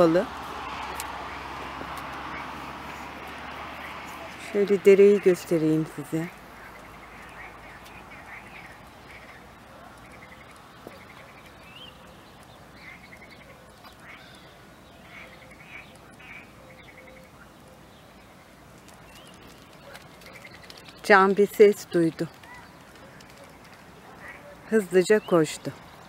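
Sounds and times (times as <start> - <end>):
frogs croaking: 0.0 - 21.1, 22.4 - 26.0.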